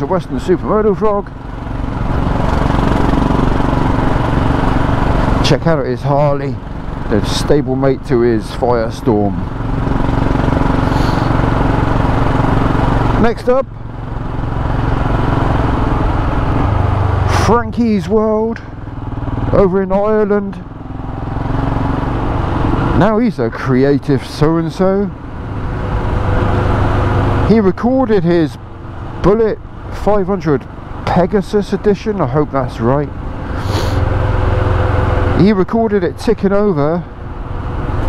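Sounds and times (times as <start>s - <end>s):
motorcycle engine running: 0.0s - 38.0s
road and wind noise: 0.0s - 38.0s.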